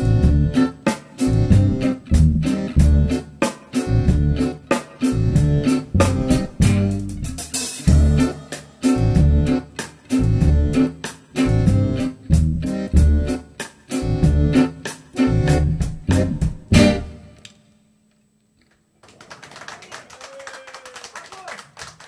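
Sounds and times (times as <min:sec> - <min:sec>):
drums driving beat: 0:00.0 - 0:17.1
acoustic band playing: 0:00.0 - 0:17.5.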